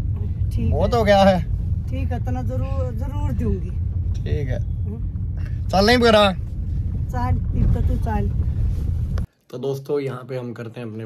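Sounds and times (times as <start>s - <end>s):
car engine and road noise: 0.0s - 9.3s
voices: 0.1s - 6.4s, 7.1s - 8.3s.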